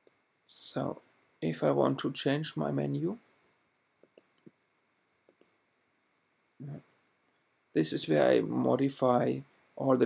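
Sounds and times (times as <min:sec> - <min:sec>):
computer mouse clicks: 0:04.0 - 0:04.6, 0:05.3 - 0:05.6.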